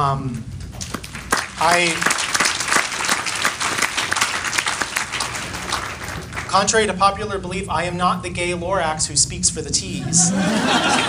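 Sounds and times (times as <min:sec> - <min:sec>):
audience applauding: 0:00.8 - 0:06.6.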